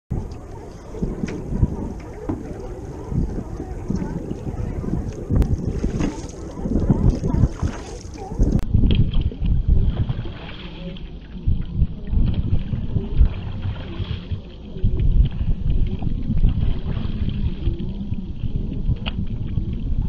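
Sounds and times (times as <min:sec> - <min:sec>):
wind buffeting microphone: 0:00.1 - 0:20.0.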